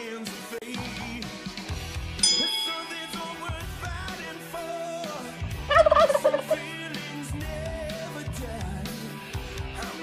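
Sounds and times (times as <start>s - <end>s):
rock music: 0.0s - 10.0s.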